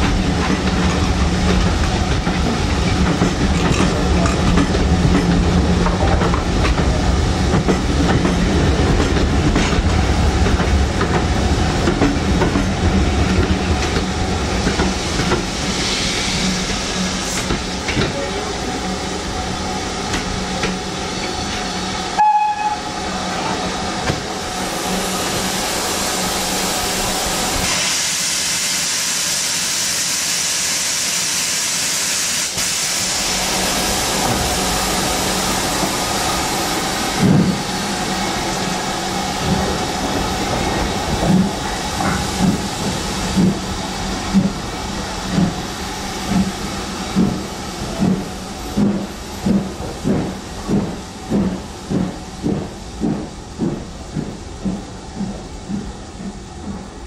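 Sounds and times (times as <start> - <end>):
steam locomotive chuffs: 0.0 - 57.0
steam hissing: 11.6 - 56.9.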